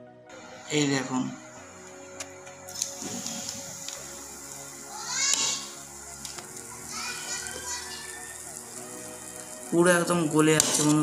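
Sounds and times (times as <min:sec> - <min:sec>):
music-like tones: 0:00.0 - 0:11.0
rising cry: 0:03.4 - 0:09.8
children calling out: 0:04.6 - 0:09.6.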